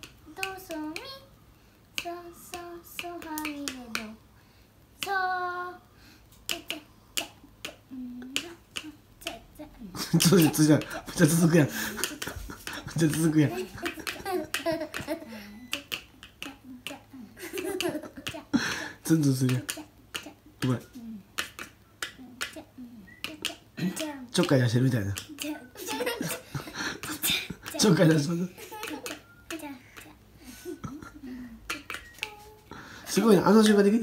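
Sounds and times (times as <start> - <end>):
soft child's voice: 2.0 - 4.2, 5.0 - 5.9, 6.5 - 10.8, 15.2 - 17.4, 19.5 - 21.3, 22.0 - 24.3, 25.2 - 26.4, 28.7 - 30.2, 31.2 - 32.8.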